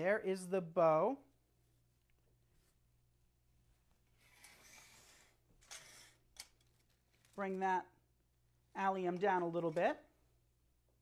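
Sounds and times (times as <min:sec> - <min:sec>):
wreath rustling and scraping: 0:04.0 - 0:07.7.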